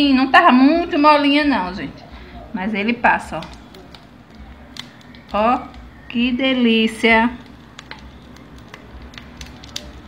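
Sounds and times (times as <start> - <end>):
faint clicks and crackles: 3.2 - 10.0
squishing of mash in a press: 3.4 - 6.2, 6.9 - 10.0.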